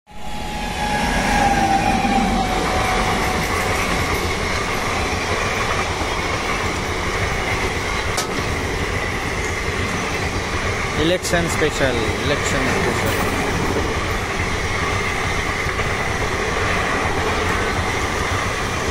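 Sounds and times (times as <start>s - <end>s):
electric train passing: 0.1s - 18.9s
wheels rumbling on rail: 0.1s - 18.9s.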